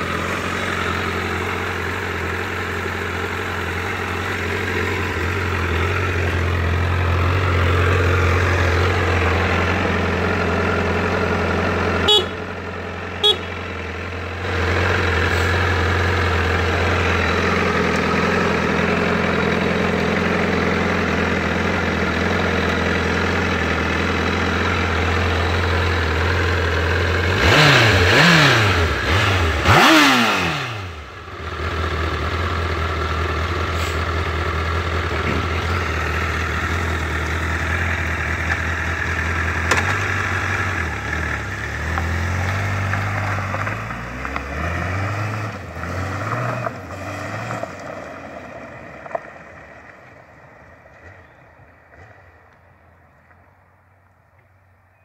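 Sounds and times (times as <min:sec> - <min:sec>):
motorcycle engine idling: 0:00.0 - 0:44.4, 0:48.0 - 0:53.4
engine revving: 0:00.0 - 0:49.3.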